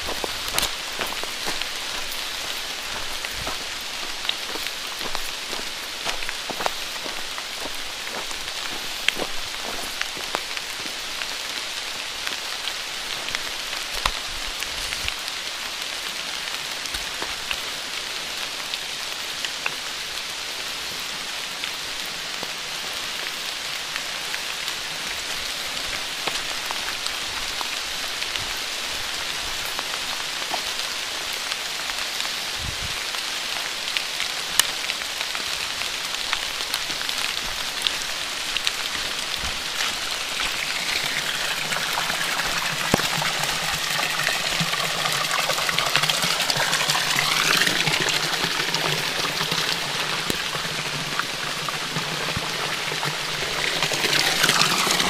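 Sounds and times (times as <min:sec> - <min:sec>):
water dripping: 0:00.0 - 0:15.2, 0:34.6 - 0:55.0
rain falling on wet ground: 0:00.0 - 0:55.0
running water: 0:00.0 - 0:55.0.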